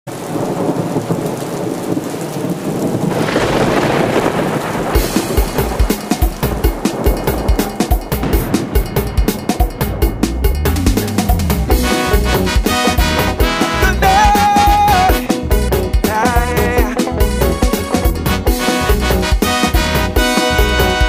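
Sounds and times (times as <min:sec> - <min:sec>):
thunder rolling: 0:00.1 - 0:16.7
rain hissing: 0:00.1 - 0:21.0
calypso band playing: 0:05.0 - 0:21.0.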